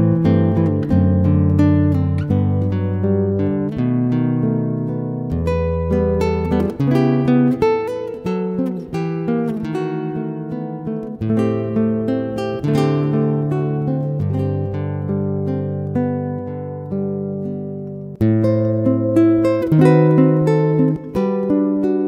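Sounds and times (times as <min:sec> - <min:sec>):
solo classical guitar: 0:00.0 - 0:22.0.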